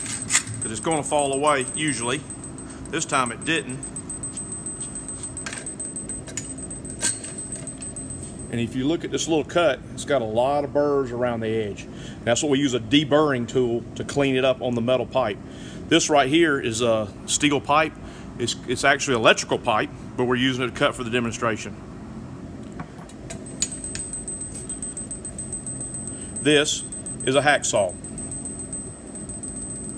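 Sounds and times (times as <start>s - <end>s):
light metallic clinks: 0.0s - 8.7s, 23.3s - 29.9s
steady low hum: 0.0s - 9.5s, 23.3s - 29.9s.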